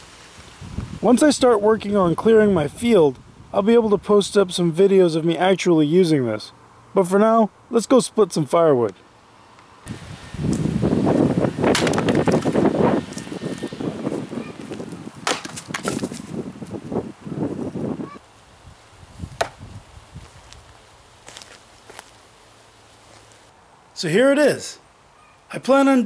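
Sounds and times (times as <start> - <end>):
axe chopping firewood: 11.7 - 12.6, 15.2 - 16.2, 19.4 - 19.6
knocking and rustling: 14.7 - 16.3.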